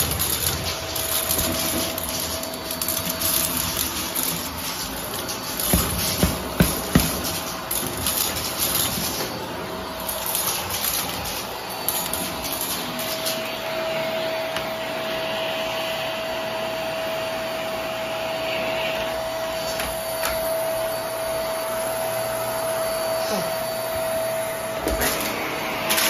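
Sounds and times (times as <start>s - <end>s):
debris clicking in vacuum: 0.0s - 9.4s
vacuum cleaner whining: 0.0s - 26.0s.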